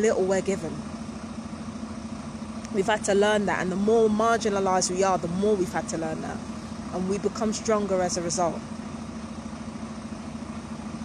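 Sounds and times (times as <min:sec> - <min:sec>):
engine hum with flutter: 0:00.0 - 0:11.0.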